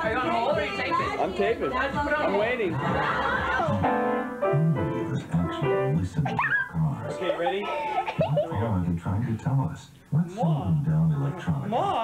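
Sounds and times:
upright piano notes: 3.7 - 7.4.

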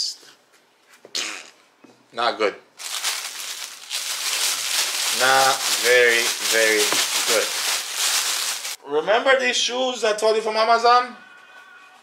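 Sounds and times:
plastic bag crinkling: 2.8 - 8.8.

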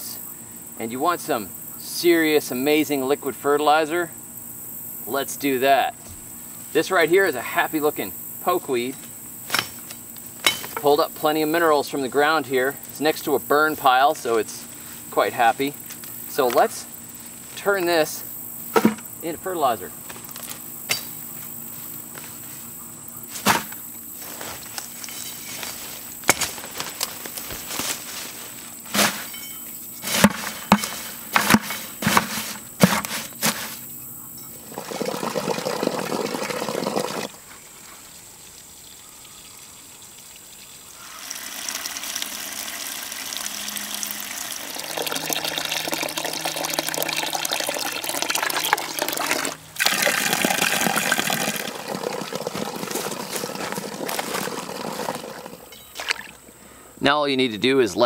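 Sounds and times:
sharp snaps and knocks: 9.5 - 10.8, 26.2 - 27.9
water pouring into plastic bucket: 34.7 - 37.4, 39.2 - 56.4.

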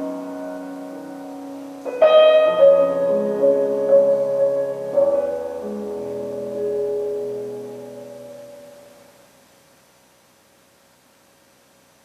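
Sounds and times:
piano music: 0.0 - 9.2
faint hiss: 0.0 - 12.0.

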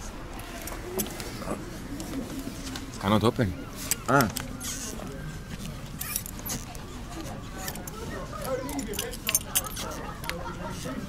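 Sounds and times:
door lever handle rattling: 6.0 - 6.8, 7.6 - 10.4.

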